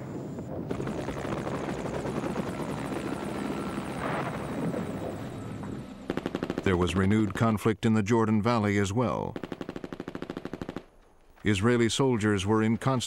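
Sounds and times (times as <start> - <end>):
helicopter rotor beating: 0.7 - 7.4.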